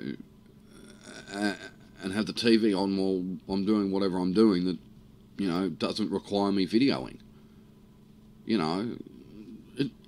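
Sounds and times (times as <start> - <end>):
man saying uh: 1.0 - 2.6.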